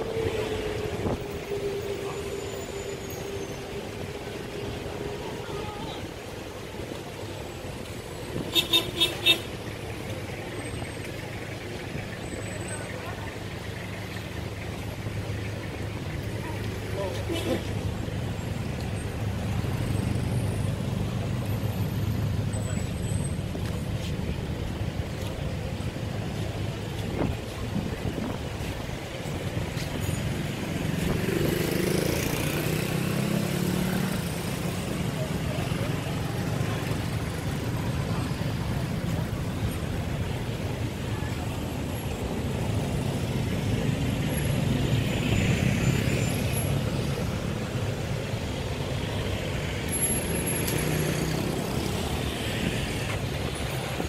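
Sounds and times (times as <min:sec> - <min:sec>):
people's voices: 0:00.0 - 0:08.5, 0:09.1 - 0:45.0
cars passing on busy road: 0:00.0 - 0:54.0.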